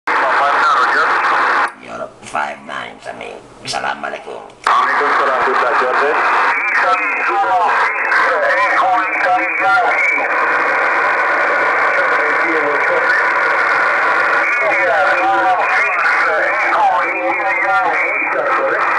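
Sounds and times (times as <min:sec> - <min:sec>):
radio static and signals: 0:00.1 - 0:02.0, 0:03.6 - 0:18.9
faint voice over radio: 0:04.7 - 0:18.9.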